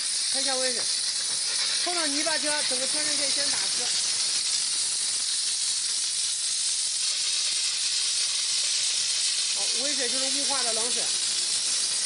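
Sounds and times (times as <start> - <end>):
steam spray gun hissing: 0.0 - 12.0.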